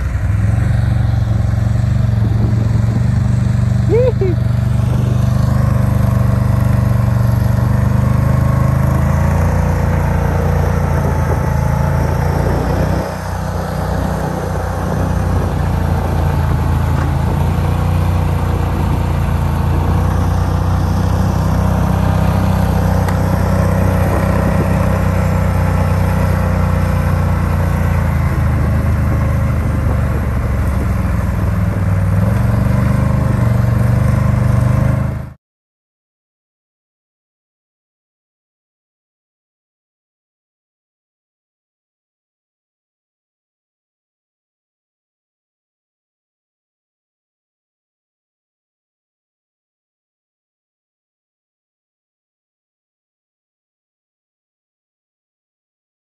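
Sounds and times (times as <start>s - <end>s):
atv engine running: 0.0s - 35.4s.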